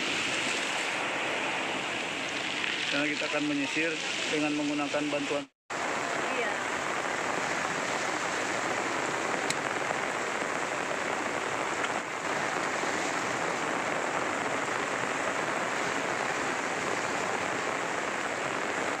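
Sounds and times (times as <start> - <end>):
choppy breaking waves: 0.0 - 19.0
heavy rain: 0.0 - 19.0.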